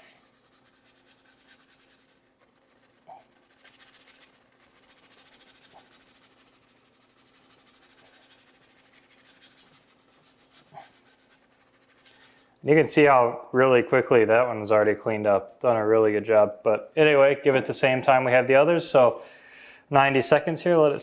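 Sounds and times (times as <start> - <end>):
brush scrubbing wet wheel: 0.0 - 12.6
low steady hum: 0.0 - 21.0.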